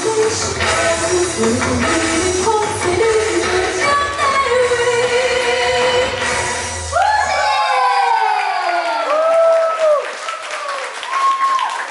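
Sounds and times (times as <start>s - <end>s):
audience cheering and shouting: 6.8s - 11.9s
scattered clapping: 8.8s - 11.9s.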